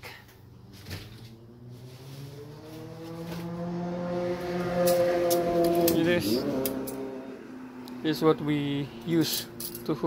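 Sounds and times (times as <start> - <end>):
motor drone rising in pitch: 0.6 - 8.4.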